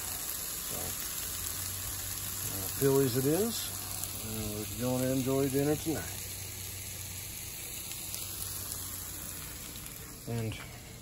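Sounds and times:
vegetables sizzling in skillet: 0:00.0 - 0:11.0.

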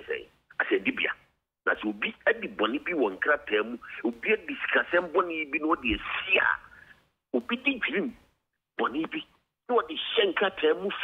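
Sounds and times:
man talking over a telephone: 0:00.0 - 0:06.8, 0:07.4 - 0:11.0.

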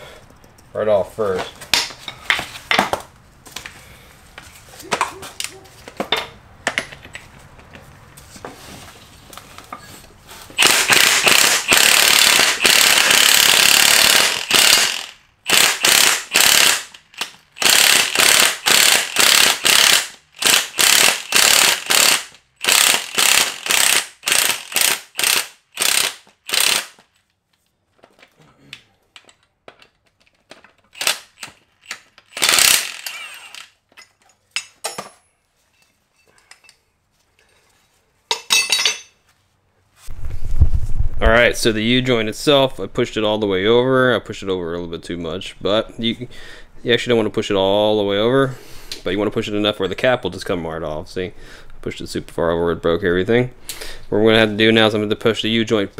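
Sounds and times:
electric ratchet running: 0:10.6 - 0:27.0, 0:31.0 - 0:33.7.

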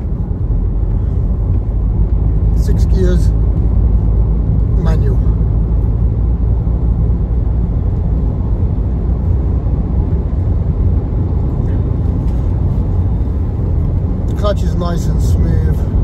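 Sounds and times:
car interior rumble while driving: 0:00.0 - 0:16.0.

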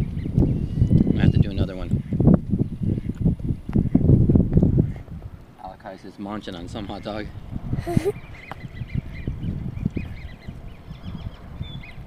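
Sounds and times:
birds chirping: 0:00.0 - 0:04.2, 0:05.6 - 0:12.0
wind on microphone: 0:00.0 - 0:12.0.

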